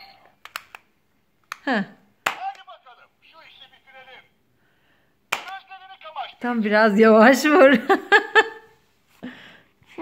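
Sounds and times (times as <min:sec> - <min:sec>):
hand slapping plastic toy watch: 0:00.4 - 0:02.7, 0:05.3 - 0:05.6.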